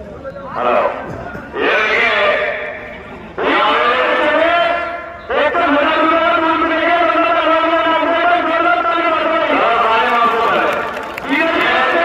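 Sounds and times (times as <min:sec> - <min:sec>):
man announcing over loudspeaker: 0:00.0 - 0:12.0.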